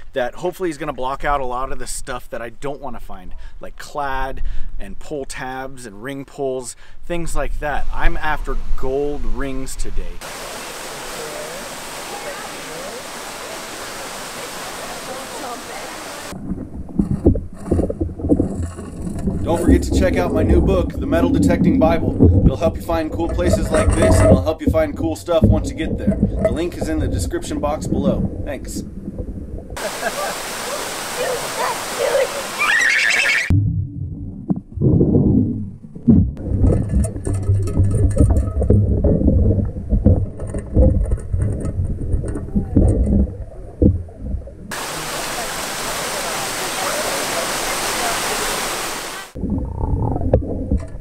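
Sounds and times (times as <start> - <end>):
muffled underwater water movement: 8.6 - 32.7, 33.5 - 51.0
distant voices: 10.2 - 16.3
waterfall rushing: 10.2 - 16.4, 29.8 - 33.5, 44.7 - 49.4.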